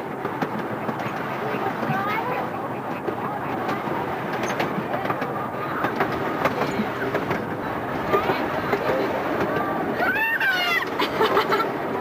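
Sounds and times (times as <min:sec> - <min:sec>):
miniature train rumbling: 0:00.0 - 0:12.0
wheels clattering on track: 0:00.0 - 0:12.0.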